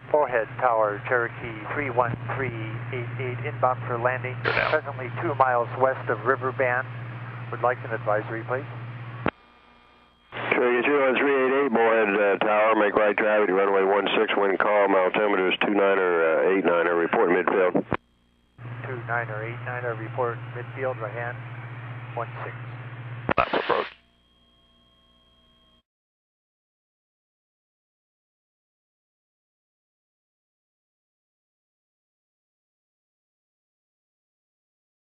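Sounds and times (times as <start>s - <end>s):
faint electrical hum: 0.1s - 13.8s, 14.7s - 25.6s
controller speaking over radio: 0.3s - 6.8s, 10.4s - 17.9s, 18.8s - 21.3s, 23.3s - 24.0s
radio click: 4.5s - 4.8s, 23.3s - 24.0s.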